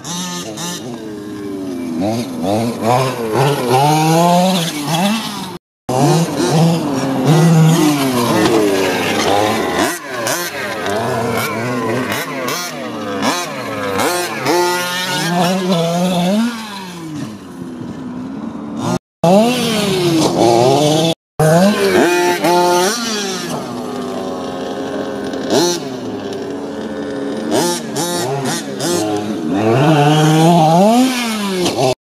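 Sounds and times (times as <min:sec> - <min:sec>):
two-stroke engines revving: 0:00.0 - 0:32.0.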